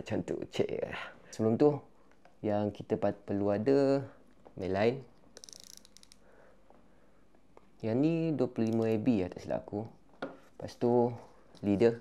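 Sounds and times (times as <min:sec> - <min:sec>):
fishing reel clicking: 0:05.4 - 0:06.2.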